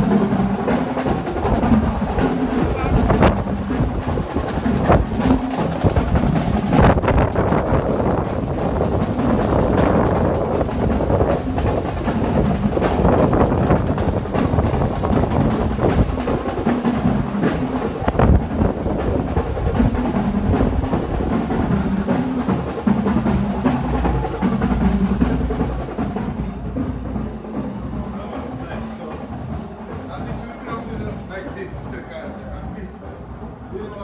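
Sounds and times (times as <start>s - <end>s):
wind buffeting microphone: 0.0s - 32.7s
drum-heavy music: 0.0s - 34.0s.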